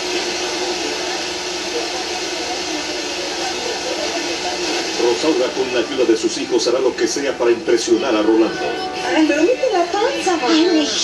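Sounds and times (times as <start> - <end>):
tv static hiss: 0.0 - 11.0.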